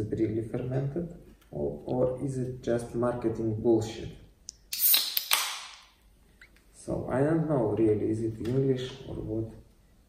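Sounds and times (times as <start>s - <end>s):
can pull tab opening: 4.5s - 5.6s
gas hissing from can: 4.7s - 5.4s.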